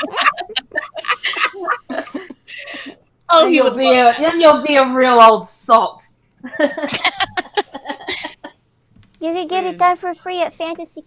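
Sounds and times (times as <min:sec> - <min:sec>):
people laughing: 0:00.0 - 0:03.0, 0:06.4 - 0:08.5.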